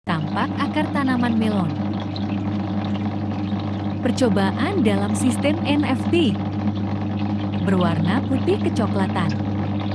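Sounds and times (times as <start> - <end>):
steady low hum: 0.1 - 9.9
water running through channel: 0.1 - 9.9.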